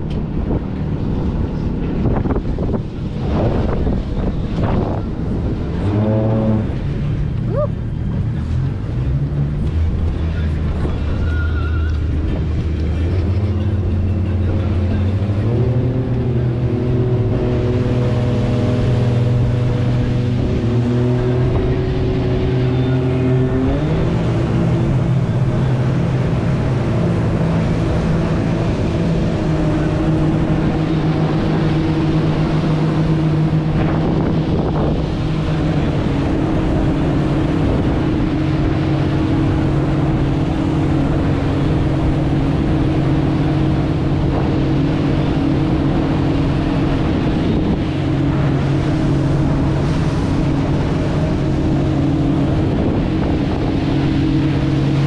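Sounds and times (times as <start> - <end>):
motorboat engine running: 0.0 - 55.0
wind and water rushing: 0.0 - 55.0.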